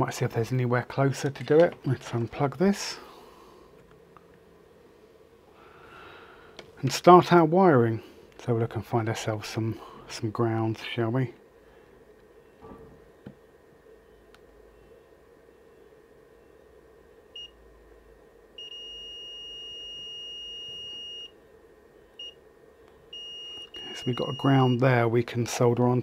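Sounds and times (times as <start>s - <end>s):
multimeter continuity beeps: 17.3s - 17.6s, 18.6s - 21.4s, 22.2s - 22.4s, 23.1s - 25.0s.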